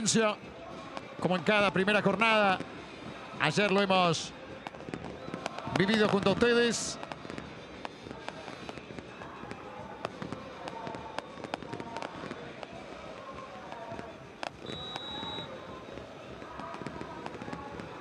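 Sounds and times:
fireworks banging and crackling: 0.0 - 18.0
stadium crowd hum: 0.0 - 18.0.

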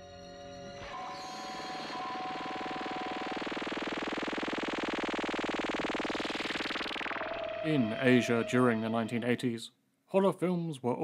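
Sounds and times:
distorted synthesizer buzzing pulse: 0.6 - 9.5
held high synth tones: 0.7 - 9.7.

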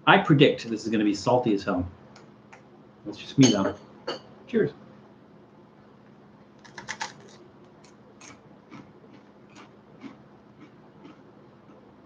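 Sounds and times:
crispbread crunching: 6.6 - 11.8.

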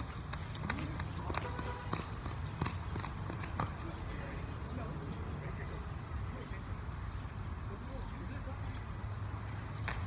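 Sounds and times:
footsteps running on concrete: 0.0 - 4.0.

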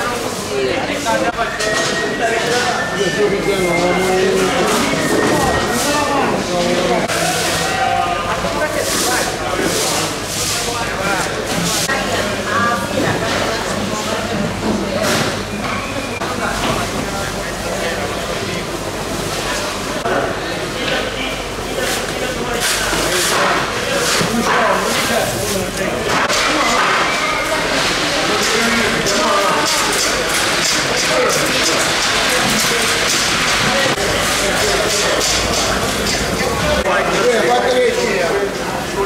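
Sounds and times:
crowd chatter: 0.0 - 39.0.

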